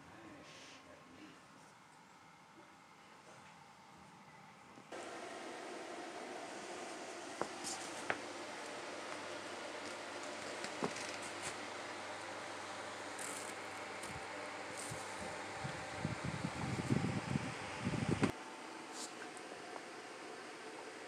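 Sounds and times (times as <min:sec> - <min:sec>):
fan whirring: 0:00.0 - 0:21.0.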